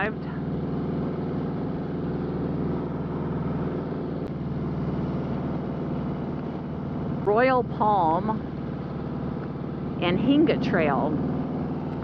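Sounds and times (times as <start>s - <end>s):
motorcycle engine cruising: 0.0s - 12.0s
road and wind noise: 0.0s - 12.0s.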